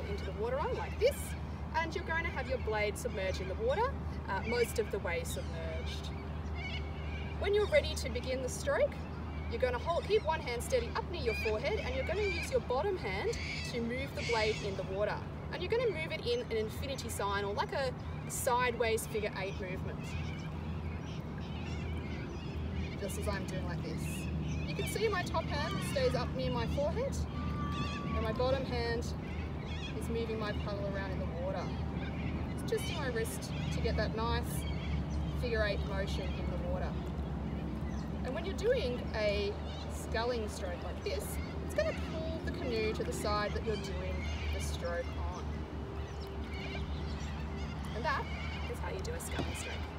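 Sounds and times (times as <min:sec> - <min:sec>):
faint warbling bird calls: 0:00.0 - 0:49.9
low outdoor rumble: 0:00.0 - 0:49.9.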